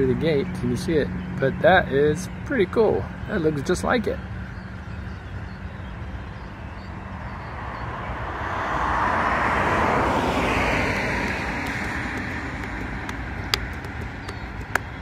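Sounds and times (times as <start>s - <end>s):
car passing by: 7.2s - 13.8s.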